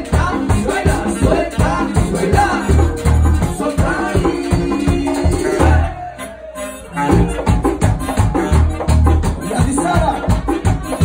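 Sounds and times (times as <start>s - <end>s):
people singing into microphones: 0.0s - 6.7s
accordion: 0.0s - 11.0s
electric bass: 0.0s - 11.0s.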